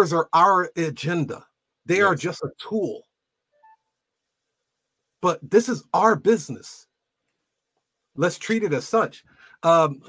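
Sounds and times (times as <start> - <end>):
faint electronic beep: 3.5 - 4.0.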